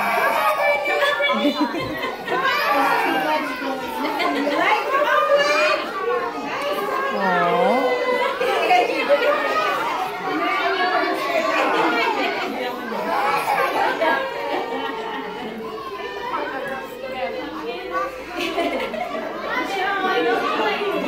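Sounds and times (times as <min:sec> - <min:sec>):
children and adults chattering: 0:00.0 - 0:21.0.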